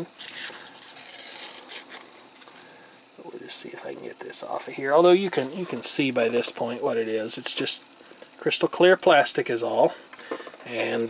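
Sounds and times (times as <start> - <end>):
paper film peeling: 0.0 - 2.7.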